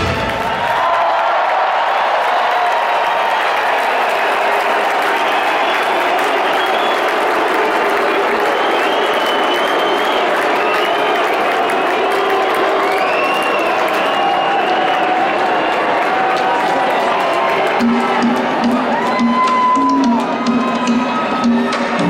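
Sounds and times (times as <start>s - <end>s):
crowd cheering: 0.0s - 22.0s
crowd clapping: 0.0s - 22.0s.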